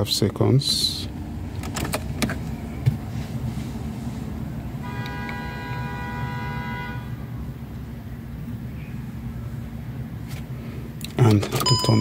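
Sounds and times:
ignition key clicks: 0:11.1 - 0:12.0.

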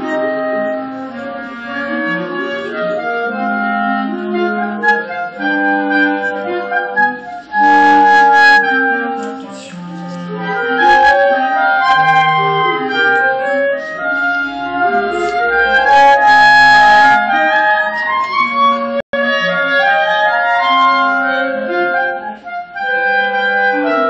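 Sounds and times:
clarinet quartet playing: 0:00.0 - 0:24.0.

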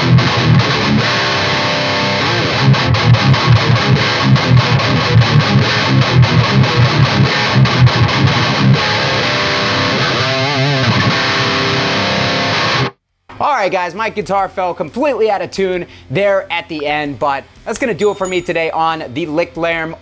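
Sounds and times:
distorted electric guitar metal riff: 0:00.0 - 0:13.4.

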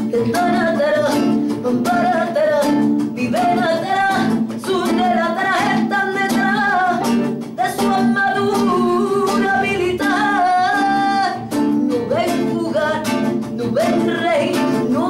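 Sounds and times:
strummed acoustic guitar: 0:00.0 - 0:15.0
woman singing: 0:00.0 - 0:15.0.

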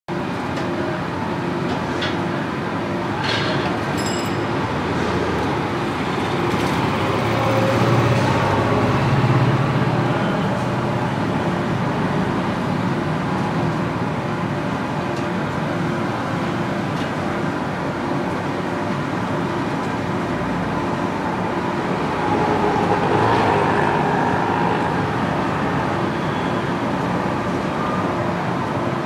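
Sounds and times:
road traffic noise: 0:00.1 - 0:29.0
vehicle engine passing: 0:21.7 - 0:26.0.

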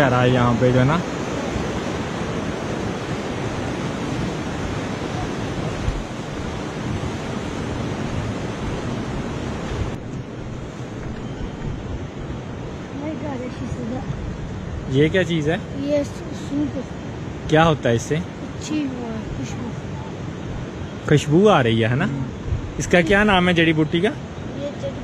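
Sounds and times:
river rushing over rocks: 0:11.8 - 0:17.6.

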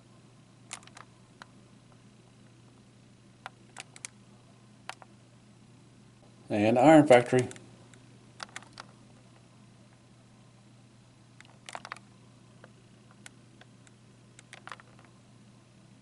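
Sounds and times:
steady low hum: 0:00.0 - 0:16.0
faint small clicks: 0:03.4 - 0:04.2, 0:07.5 - 0:08.9, 0:11.4 - 0:15.1.

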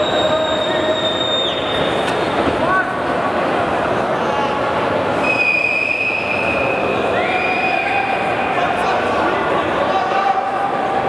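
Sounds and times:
long shrill whistle: 0:00.0 - 0:01.9, 0:05.2 - 0:08.1
arena crowd noise: 0:00.0 - 0:11.0
whistle sliding up in pitch: 0:05.2 - 0:07.9.

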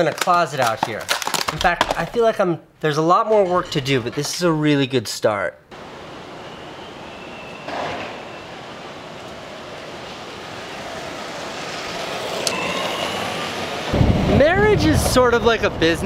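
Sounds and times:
distant traffic rumble: 0:05.7 - 0:16.0
faint high squeal: 0:05.9 - 0:08.9, 0:12.3 - 0:13.8.

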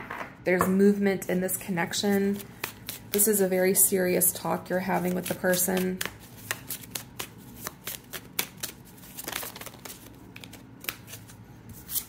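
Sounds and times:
cards clicking and flicking: 0:05.0 - 0:11.2
cards riffling: 0:05.0 - 0:12.0.

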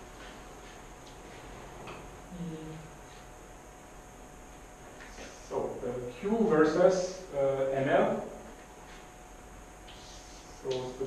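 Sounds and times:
faint room hum: 0:00.0 - 0:11.0
man speaking: 0:10.6 - 0:11.0.

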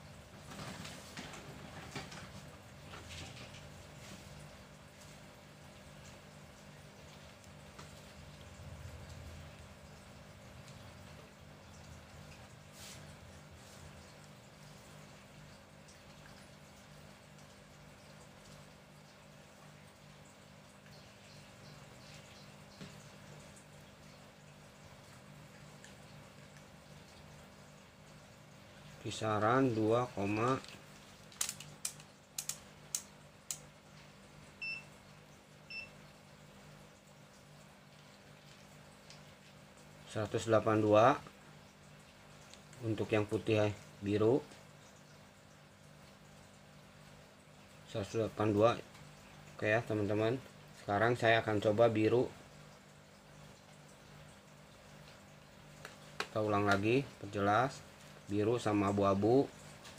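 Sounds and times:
faint clicks and handling noise: 0:30.3 - 0:33.7, 0:55.8 - 0:56.9.

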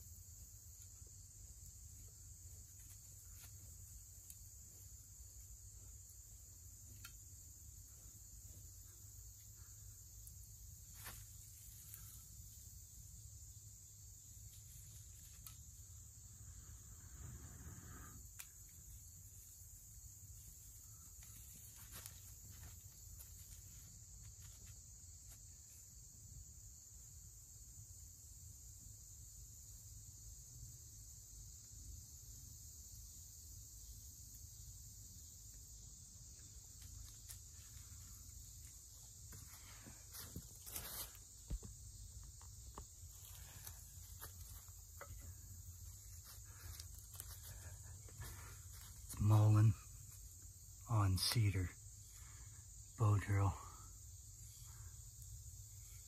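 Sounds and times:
insects chorus: 0:00.0 - 0:56.0.

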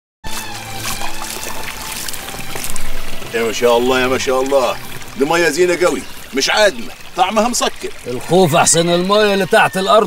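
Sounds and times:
background music with held notes: 0:00.2 - 0:10.0
water running in stream: 0:00.2 - 0:10.0
hand splashing in water: 0:00.3 - 0:05.3.

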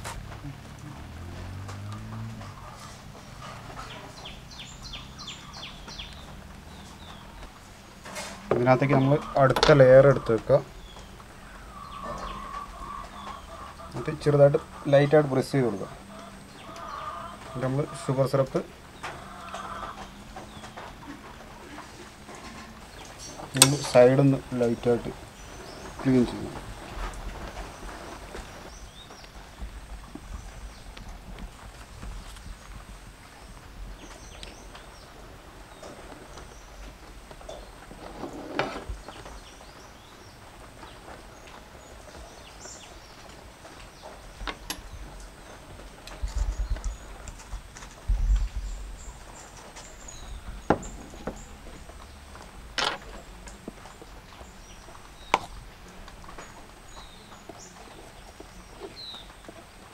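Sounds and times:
low rumbles: 0:00.0 - 0:59.9.

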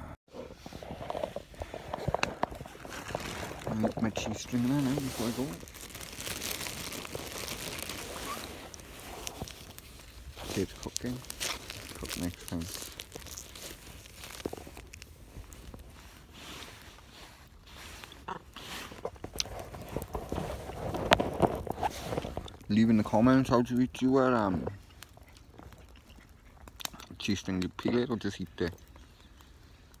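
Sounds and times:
chewing: 0:04.9 - 0:15.9, 0:18.0 - 0:22.7, 0:24.4 - 0:30.0
small clicks and rustles: 0:18.0 - 0:22.8.

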